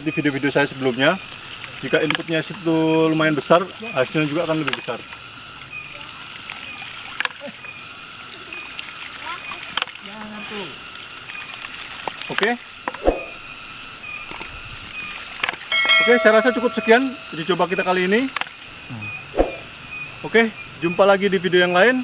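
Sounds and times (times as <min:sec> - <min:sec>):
pump valves clacking: 0:15.3 - 0:18.5.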